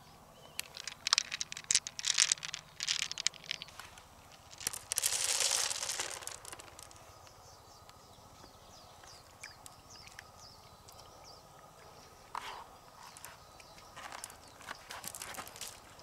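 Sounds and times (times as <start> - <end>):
hands handling mussel shell: 0.5 - 8.0, 14.0 - 15.9
high falling chirps: 4.4 - 8.0.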